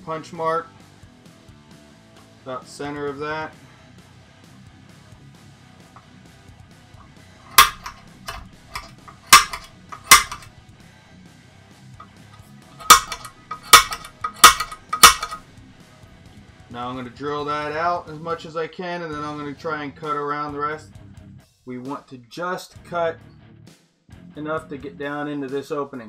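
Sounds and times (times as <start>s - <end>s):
center punch clicking on metal: 7.4s - 10.5s, 12.8s - 15.4s.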